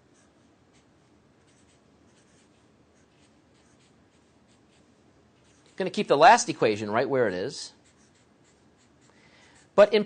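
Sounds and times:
marker scratching on surface: 0.0 - 6.1, 7.5 - 10.0.

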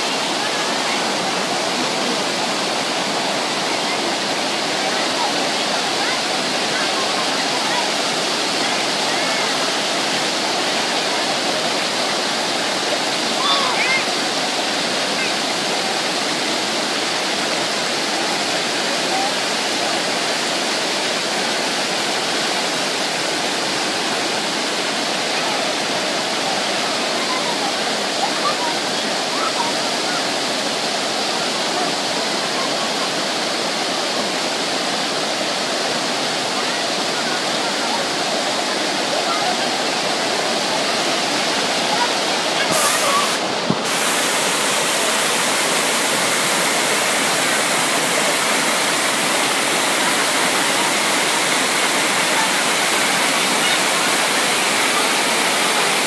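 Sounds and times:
faint voices: 0.0 - 56.0
waterfall pouring over rocks: 0.0 - 56.0.

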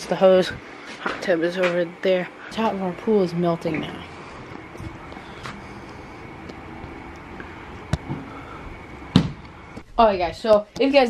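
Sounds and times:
outdoor background noise: 0.0 - 11.0
loud knock: 9.2 - 9.4.

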